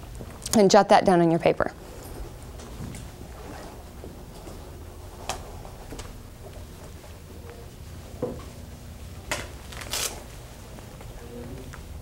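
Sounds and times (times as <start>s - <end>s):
low hum: 1.3s - 9.6s
rustles and knocks of paper and desks: 2.0s - 8.6s, 9.2s - 12.0s.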